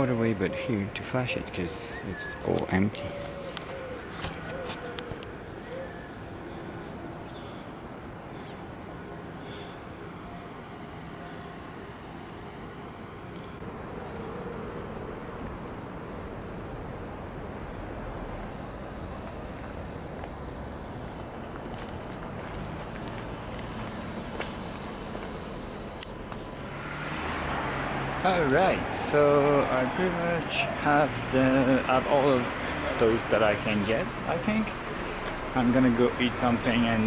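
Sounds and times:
distant traffic: 0.0s - 37.0s.

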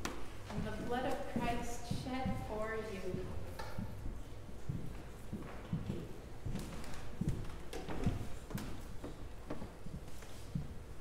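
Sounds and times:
faint room noise: 0.0s - 11.0s.

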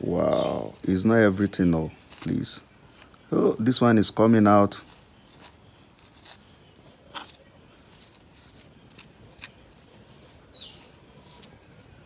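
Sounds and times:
plastic spoon scraping soil: 0.3s - 12.0s.

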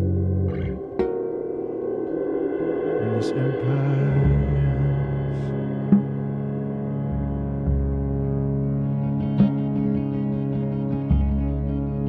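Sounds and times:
sharp struck notes ringing: 0.0s - 9.6s
ambient live band music: 0.0s - 12.0s.

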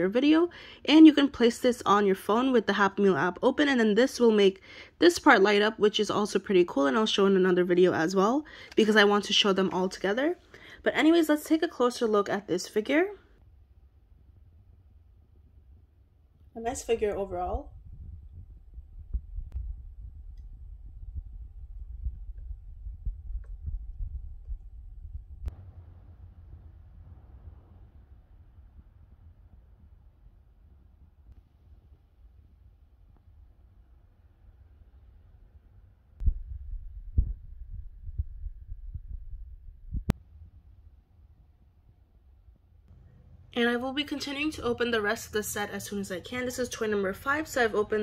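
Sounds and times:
low rumbling handling noise: 17.1s - 30.2s, 36.2s - 40.3s.

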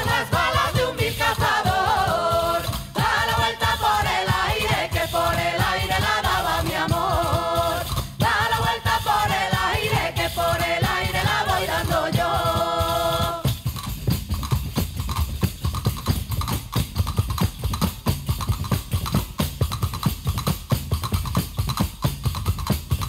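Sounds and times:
voices singing in harmony: 0.0s - 13.6s
frame drums and tambourines: 0.0s - 23.0s.

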